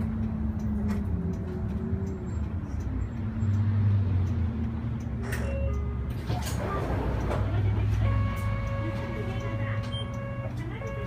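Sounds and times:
bus engine humming: 0:00.0 - 0:11.0.

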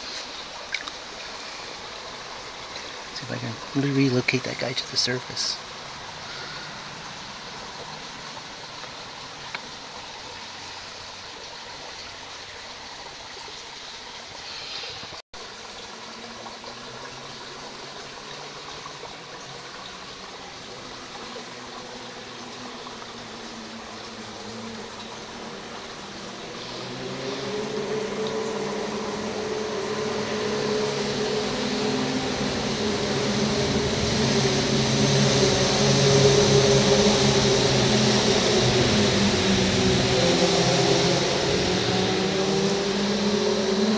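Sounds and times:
low tonal hum: 0:00.0 - 0:13.0, 0:16.1 - 0:43.9
muffled underwater creek rush: 0:00.0 - 0:43.9.

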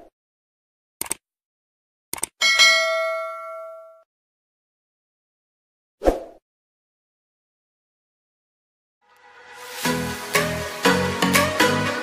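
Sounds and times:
bright bell ding: 0:02.4 - 0:04.0.

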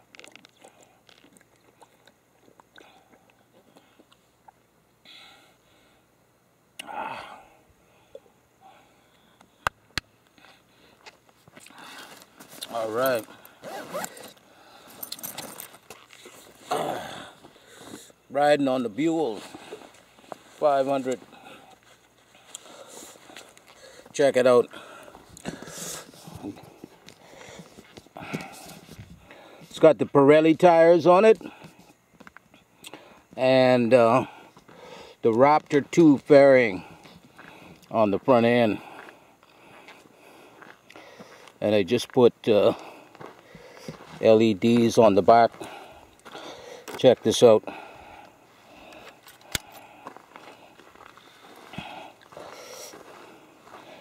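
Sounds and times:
bag rustling: 0:11.9 - 0:16.7
gear clicking and rattling: 0:13.0 - 0:16.2.

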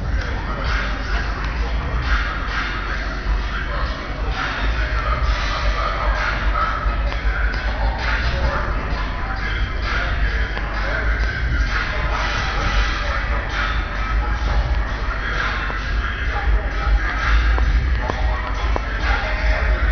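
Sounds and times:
car stereos playing music: 0:00.0 - 0:19.9
heavy continuous bass: 0:00.0 - 0:19.9.

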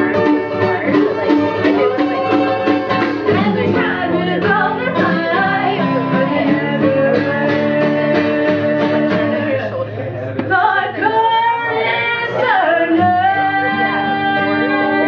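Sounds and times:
ukulele strummed: 0:00.0 - 0:09.8
acoustic guitar: 0:00.0 - 0:15.0
person singing: 0:00.0 - 0:15.0.

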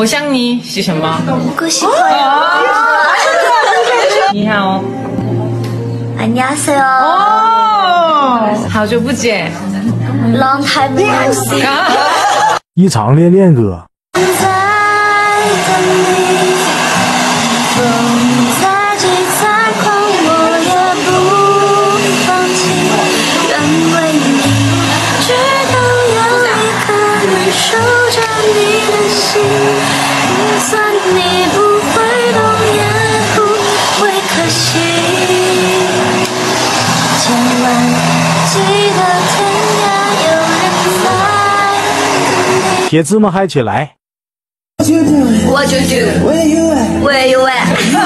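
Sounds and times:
woman singing: 0:06.2 - 0:11.9, 0:14.2 - 0:42.9
hair dryer blowing: 0:14.2 - 0:42.9, 0:47.7 - 0:48.0
music with held sung notes: 0:14.2 - 0:42.9.

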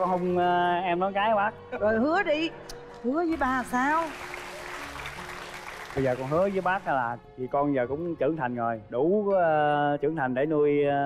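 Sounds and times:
soft background music: 0:00.0 - 0:11.0
audience applauding: 0:03.5 - 0:07.0.

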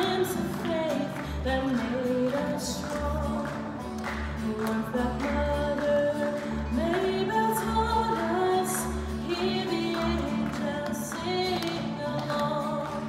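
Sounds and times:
song with sung vocals: 0:00.0 - 0:13.0.

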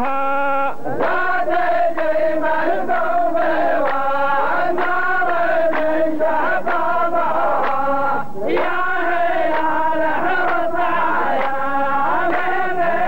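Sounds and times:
men chanting in unison: 0:00.0 - 0:13.0.

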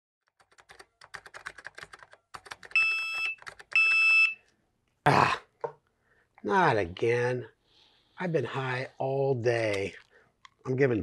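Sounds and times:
typing on a laptop keyboard: 0:00.3 - 0:04.0.

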